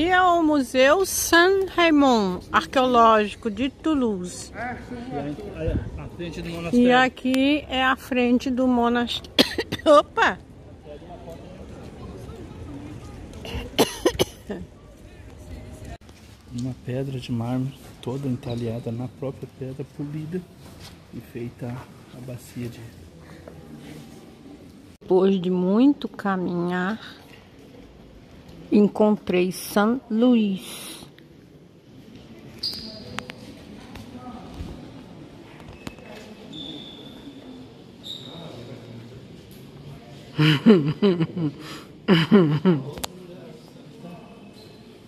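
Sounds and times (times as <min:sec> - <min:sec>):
low outdoor background noise: 0:00.0 - 0:45.0
murmur of distant voices: 0:09.1 - 0:20.6, 0:27.1 - 0:45.0
person coughing: 0:09.4 - 0:09.9, 0:13.5 - 0:14.6.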